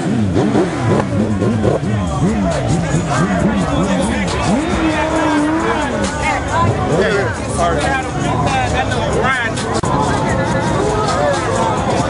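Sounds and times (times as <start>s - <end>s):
crowd chatter: 0.0s - 12.0s
engine revving: 0.0s - 12.0s.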